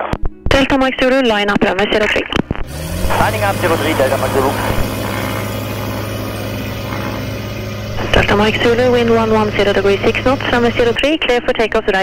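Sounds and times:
aircraft engine running steadily: 0:01.6 - 0:12.0.

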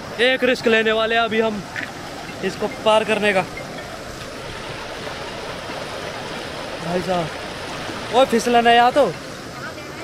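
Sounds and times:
river rushing over stones: 0:00.0 - 0:10.0.

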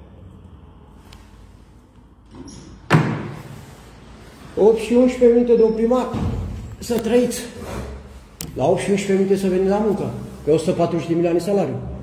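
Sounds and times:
door slamming with echo: 0:02.9 - 0:03.4, 0:06.1 - 0:06.7.

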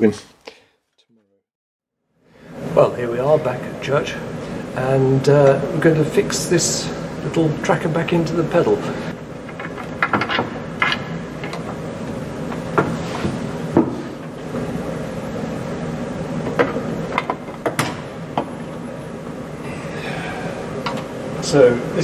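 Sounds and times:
steady low hum: 0:02.1 - 0:22.0.

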